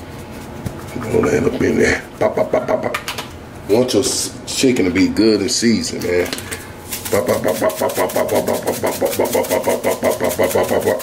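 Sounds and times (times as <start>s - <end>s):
seasoning container shaking: 6.8s - 11.0s.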